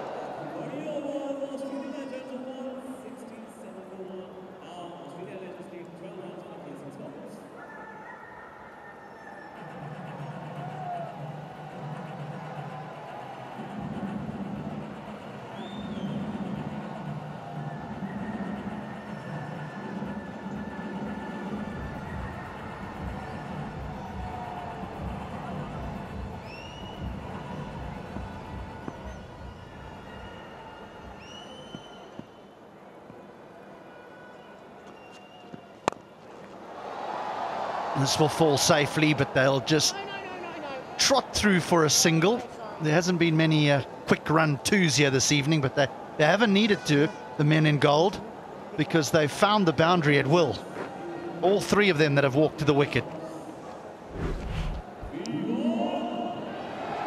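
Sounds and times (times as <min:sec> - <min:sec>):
crowd noise: 0:00.0 - 0:57.0
music over public address: 0:09.5 - 0:31.6.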